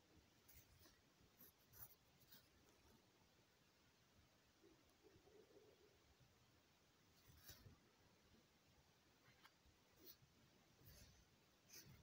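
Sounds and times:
faint scratchy rustles: 0:00.4 - 0:03.0, 0:07.1 - 0:07.9, 0:09.2 - 0:12.0.

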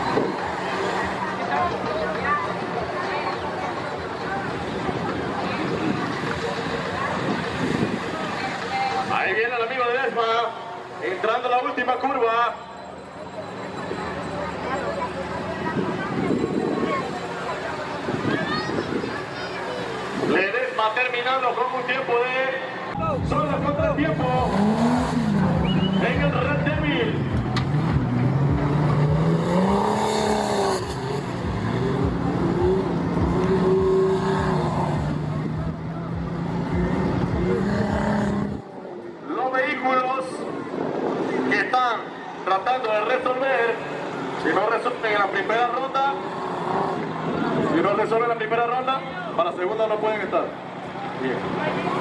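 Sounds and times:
voices: 0:00.0 - 0:52.0
car engine revving: 0:23.0 - 0:38.7, 0:44.1 - 0:47.8.

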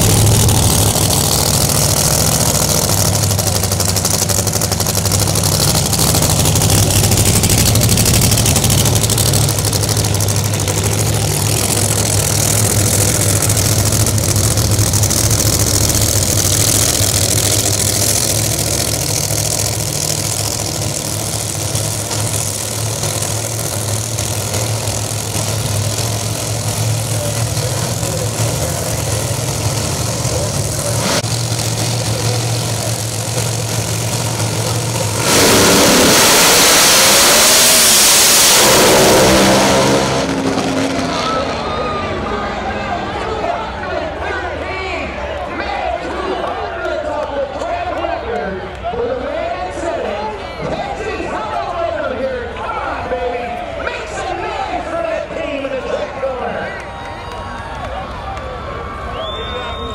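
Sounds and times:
race cars launching at full throttle: 0:00.0 - 0:48.0
drag race cars idling: 0:00.0 - 0:59.9.

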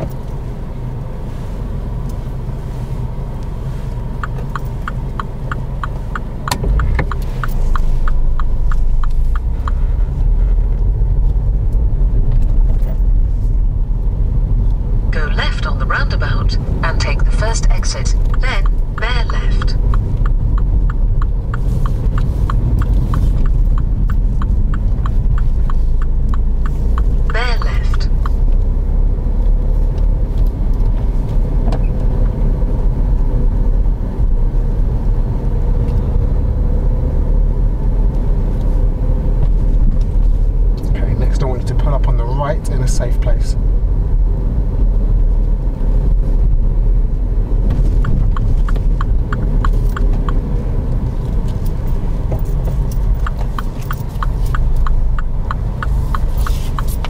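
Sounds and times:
car road and engine rumble: 0:00.0 - 0:57.0
turn indicator ticking: 0:00.0 - 0:57.0.

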